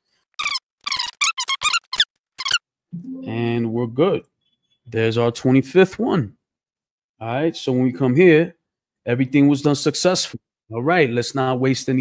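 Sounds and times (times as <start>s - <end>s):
sped-up voice squeaky chirps: 0.4s - 2.6s.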